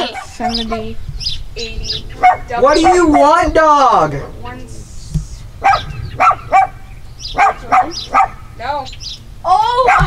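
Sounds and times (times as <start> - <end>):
small dog barking: 0.0 - 1.0, 2.1 - 3.4, 5.6 - 8.5, 9.7 - 10.0.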